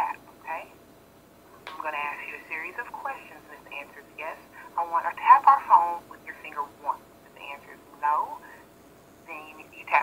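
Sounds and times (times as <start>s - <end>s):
voice over telephone: 1.8s - 8.6s, 9.3s - 10.0s.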